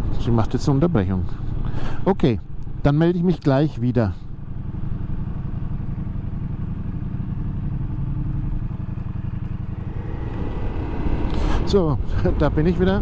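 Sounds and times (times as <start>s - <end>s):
motorcycle engine running: 4.2s - 13.0s.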